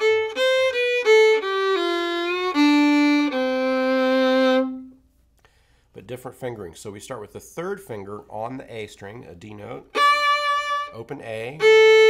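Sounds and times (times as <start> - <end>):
solo fiddle bowed: 0.0 - 5.0, 9.7 - 12.0.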